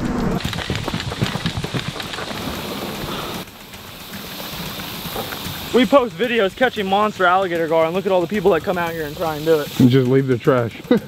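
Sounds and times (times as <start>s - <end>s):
footsteps crunching on dry dirt: 0.4s - 6.2s
outdoor hiss: 0.4s - 11.0s.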